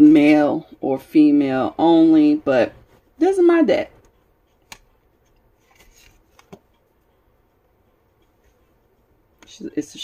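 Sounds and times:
card rustling on card: 0:04.5 - 0:06.9
card tapping on cloth: 0:05.7 - 0:06.7.

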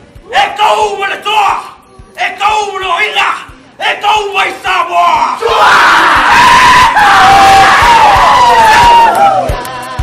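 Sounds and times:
group shouting in chant: 0:03.0 - 0:09.6
crowd yelling and screaming: 0:05.3 - 0:09.6.

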